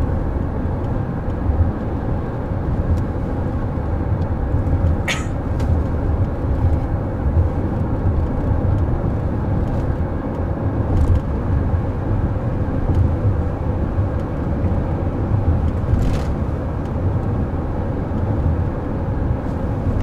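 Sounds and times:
road and tyre rumble: 0.0s - 20.0s.

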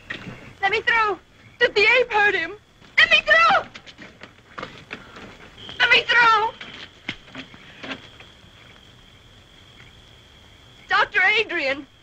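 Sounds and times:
faint hiss: 0.0s - 12.0s.

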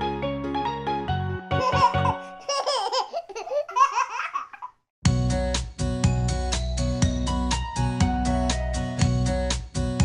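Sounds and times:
baby giggling and laughing: 1.5s - 4.8s.

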